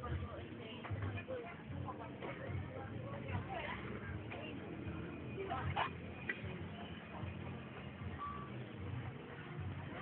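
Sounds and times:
short high beep: 8.2s - 8.6s.

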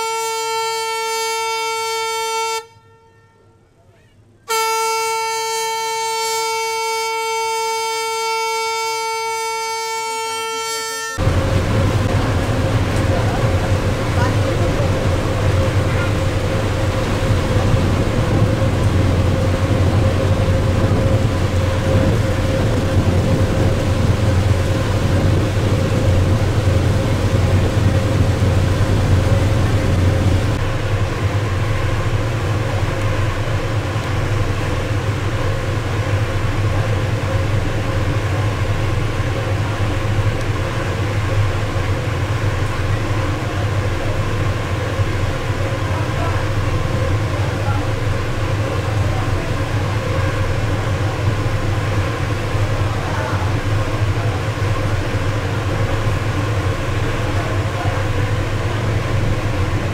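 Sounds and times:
boat engine droning: 4.6s - 59.9s.

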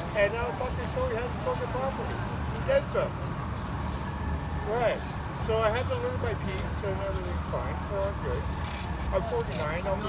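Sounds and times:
city street traffic rumble: 0.0s - 10.0s.

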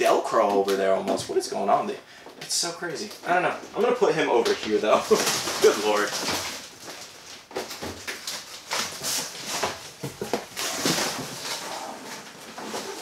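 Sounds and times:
cardboard packaging rustling: 2.9s - 13.0s.

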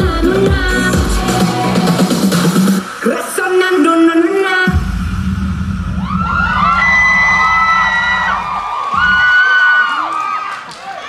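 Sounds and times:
audience screaming and cheering: 5.8s - 11.0s.

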